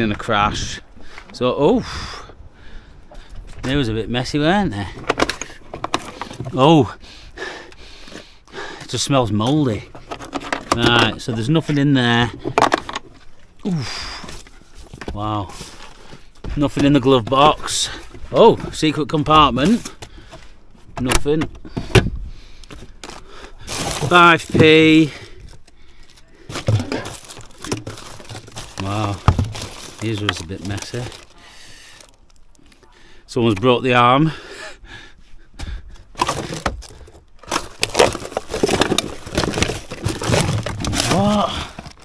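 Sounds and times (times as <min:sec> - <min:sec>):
plastic and paper rustling: 0:14.3 - 0:20.9, 0:22.6 - 0:32.9, 0:36.2 - 0:42.0
person speaking: 0:26.2 - 0:34.4.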